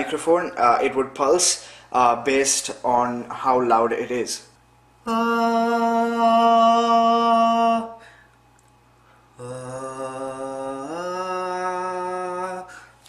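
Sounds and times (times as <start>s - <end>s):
man singing held notes: 5.0s - 8.0s, 9.4s - 12.9s.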